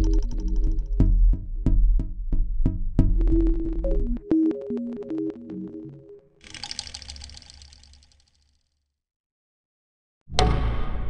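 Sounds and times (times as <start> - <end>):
electronic buzzing rattle: 6.4 - 8.7.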